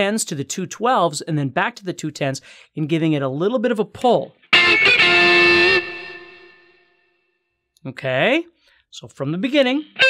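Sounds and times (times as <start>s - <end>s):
electric guitar note ringing: 4.5s - 7.2s.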